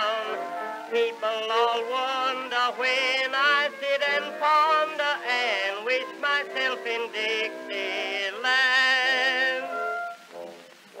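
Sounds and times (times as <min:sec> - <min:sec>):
man singing with orchestra: 0:00.0 - 0:09.8.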